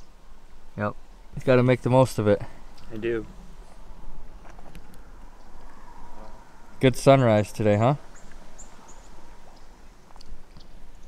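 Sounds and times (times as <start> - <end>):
quiet outdoor background noise: 0.0 - 11.0.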